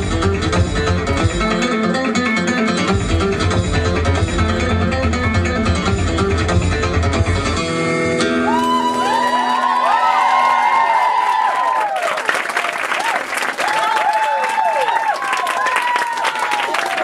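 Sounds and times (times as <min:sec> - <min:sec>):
crowd cheering and whooping: 0:08.2 - 0:17.0
audience applauding: 0:08.4 - 0:17.0.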